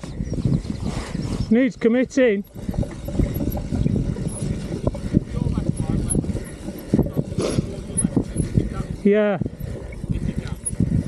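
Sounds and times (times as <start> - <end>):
bike tyres rumbling over dirt: 0.0 - 11.0.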